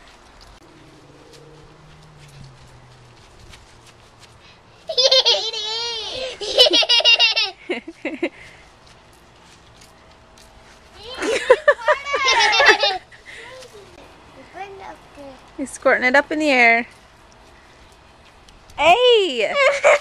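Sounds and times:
young child laughing: 0:04.9 - 0:08.3, 0:11.0 - 0:13.7, 0:19.5 - 0:20.0.

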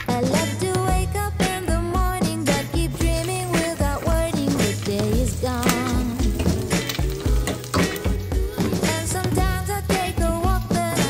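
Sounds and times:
pop music with steady beat: 0:00.0 - 0:11.0
egg and sausages sizzling in pan: 0:02.5 - 0:11.0.

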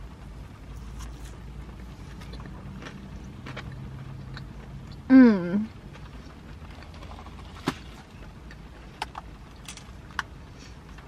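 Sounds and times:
low car hum: 0:00.0 - 0:11.0
person chewing food: 0:00.8 - 0:05.1.

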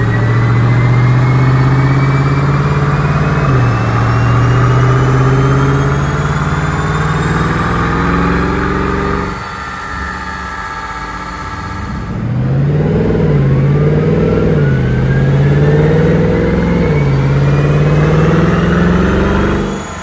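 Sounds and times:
car engine revving on dyno: 0:00.0 - 0:20.0
faint rising whine: 0:00.0 - 0:20.0.

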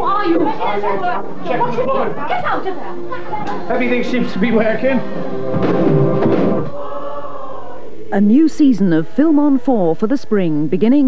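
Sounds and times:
trailer music with choir chord: 0:00.4 - 0:08.0.

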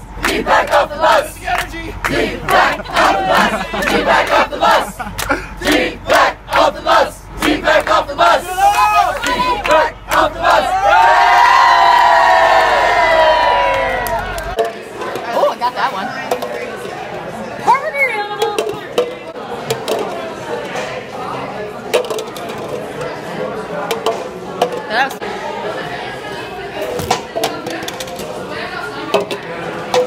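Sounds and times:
crowd chanting: 0:00.0 - 0:15.1
crowd screaming: 0:08.3 - 0:14.6.

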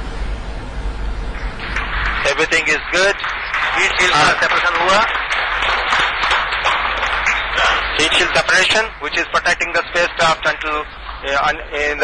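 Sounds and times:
audience applauding: 0:01.4 - 0:12.0.

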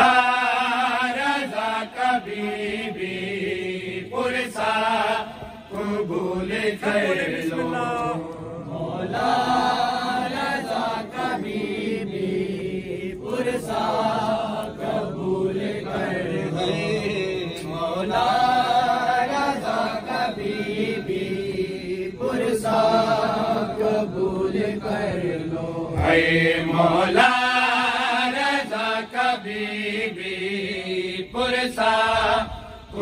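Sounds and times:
men chanting into a microphone: 0:00.0 - 0:33.0.

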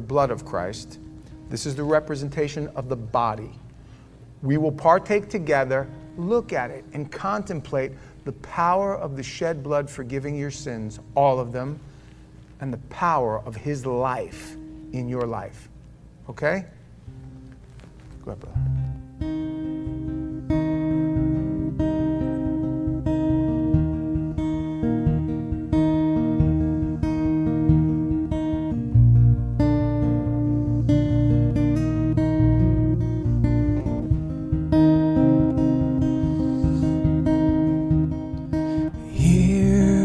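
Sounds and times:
guitar playing chords: 0:00.0 - 0:12.5, 0:14.0 - 0:16.2, 0:16.8 - 0:40.0.

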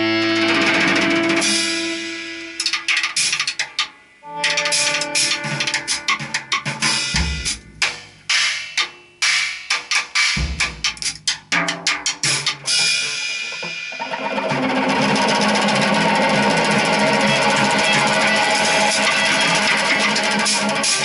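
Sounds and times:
drum kit: 0:00.0 - 0:21.0
electric guitar notes: 0:04.2 - 0:06.8.

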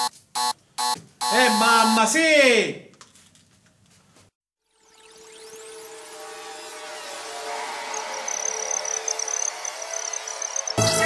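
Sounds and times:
electronic drone: 0:04.6 - 0:11.0
thin high whine: 0:04.7 - 0:11.0.

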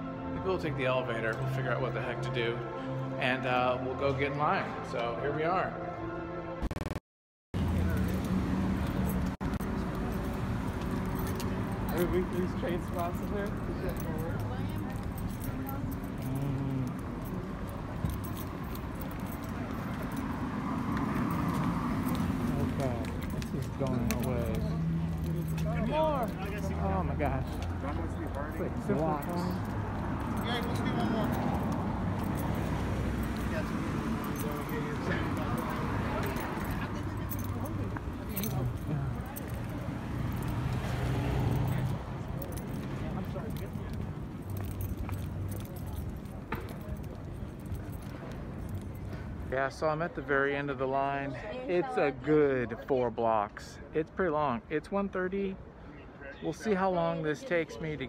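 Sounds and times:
chatter of people: 0:33.3 - 0:49.4.

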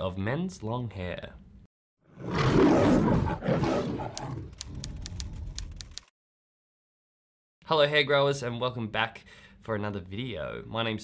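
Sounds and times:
lion roar: 0:02.0 - 0:04.5
typewriter key clicks: 0:04.2 - 0:06.1.

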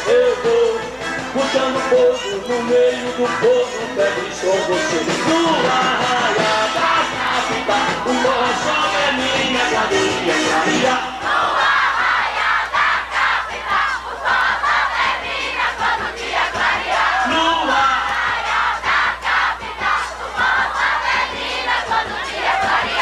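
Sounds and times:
crowd shouting together: 0:04.5 - 0:23.0.

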